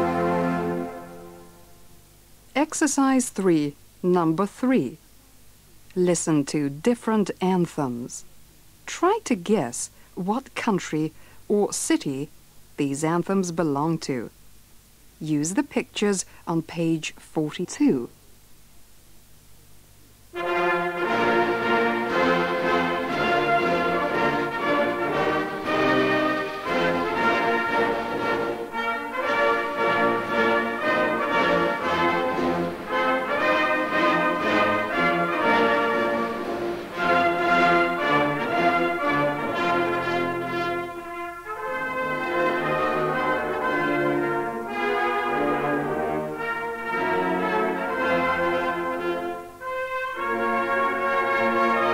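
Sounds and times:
brass band playing anthem: 0.0 - 1.6, 20.4 - 51.9.

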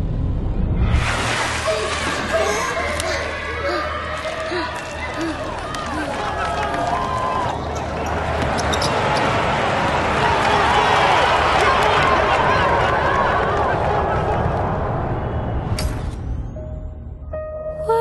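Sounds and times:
crowd voices and shouts: 1.6 - 15.8.

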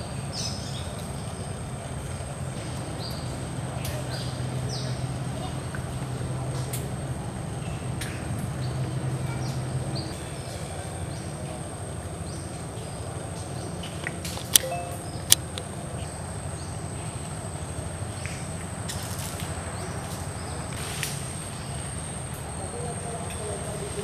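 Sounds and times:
sharp clicks: 14.3 - 15.6.

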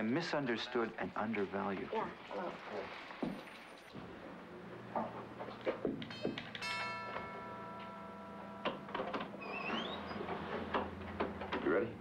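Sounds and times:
two-note doorbell chime: 6.1 - 9.2
door squeaking open: 9.1 - 10.8.

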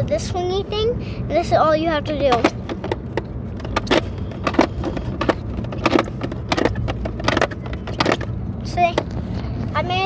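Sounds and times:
car rumbling while moving: 0.0 - 10.0
plastic handle clicking and knocking: 2.3 - 8.3.

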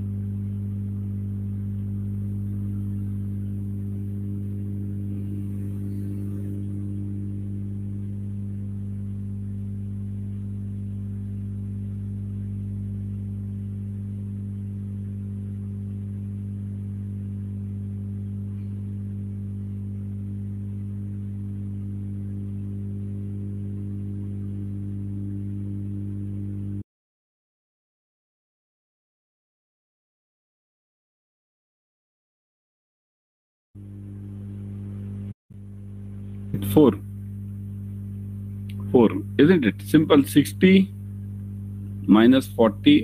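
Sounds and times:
low electrical hum: 0.0 - 26.8, 33.8 - 43.0.

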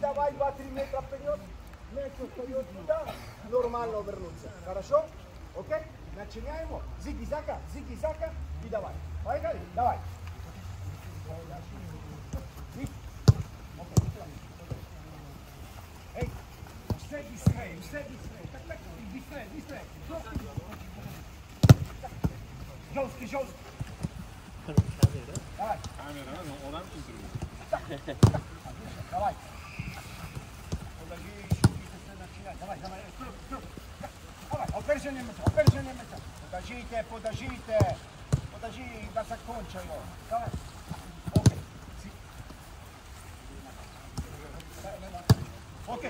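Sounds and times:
players calling out: 10.9 - 46.0
football kicked on grass: 12.2 - 15.0, 21.5 - 32.0, 34.4 - 36.2, 37.2 - 38.7, 39.7 - 41.8, 44.1 - 46.0
ball being kicked: 13.2 - 14.9, 21.5 - 22.4, 28.2 - 28.5, 41.2 - 41.7, 45.2 - 45.6.

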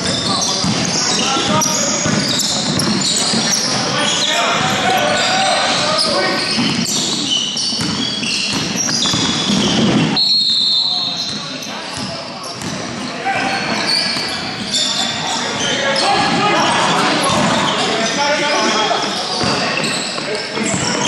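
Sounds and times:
basketball bouncing on court: 0.0 - 3.8, 6.4 - 10.2, 11.2 - 13.1
players calling out: 0.0 - 9.6, 10.4 - 21.0
sneaker squeaks: 0.0 - 21.0.

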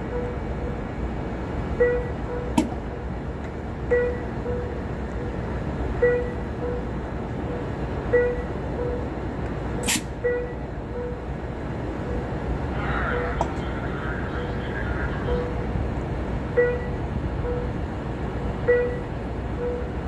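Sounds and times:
low rumble of train: 0.0 - 20.0
locomotive bell ringing: 15.2 - 15.7.

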